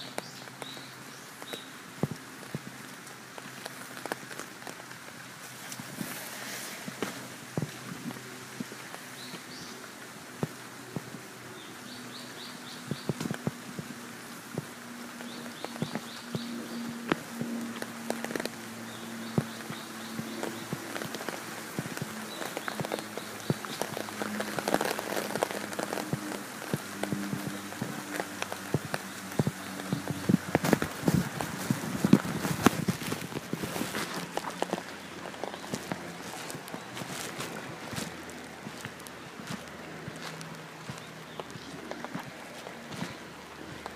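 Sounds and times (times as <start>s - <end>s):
low steady tones: 0.0s - 43.9s
footsteps: 1.4s - 9.5s, 12.9s - 43.9s.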